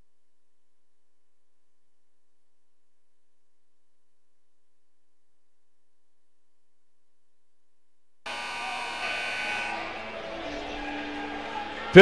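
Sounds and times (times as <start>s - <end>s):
scoreboard buzzer: 8.3s - 10.2s.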